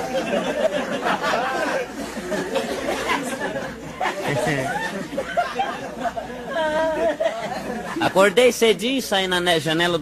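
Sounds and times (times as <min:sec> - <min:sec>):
audience chattering and laughing: 0:00.0 - 0:08.8.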